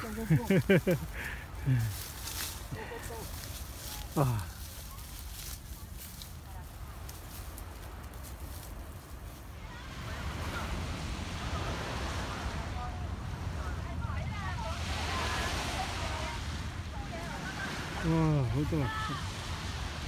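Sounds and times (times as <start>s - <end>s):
small waves on sandy shore: 0.0s - 20.0s.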